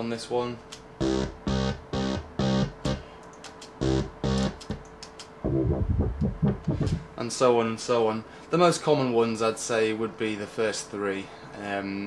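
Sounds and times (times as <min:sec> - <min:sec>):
dubstep wobble bass: 0:05.4 - 0:07.0.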